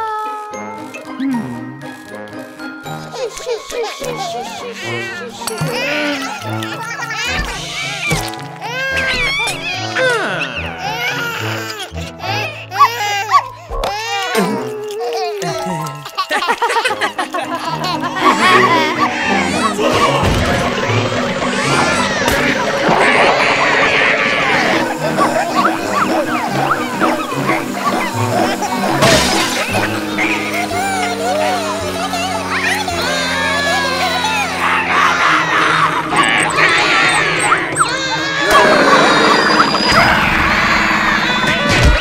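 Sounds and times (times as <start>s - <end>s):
cartoon babies crying and squealing: 0.0s - 1.4s, 2.8s - 42.0s
light background music: 0.0s - 40.2s
children's voices: 18.0s - 40.1s.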